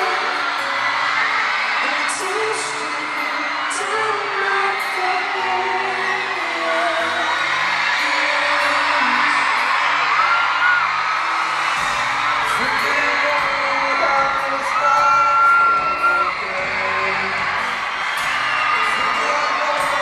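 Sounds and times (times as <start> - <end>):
audience whooping and screaming: 0.0 - 20.0
live pop song over sound system: 0.0 - 20.0.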